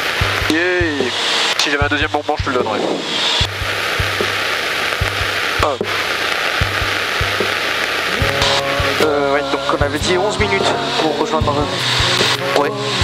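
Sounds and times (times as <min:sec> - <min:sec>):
low thumps: 0:02.4 - 0:10.8
wind hiss: 0:02.4 - 0:13.0.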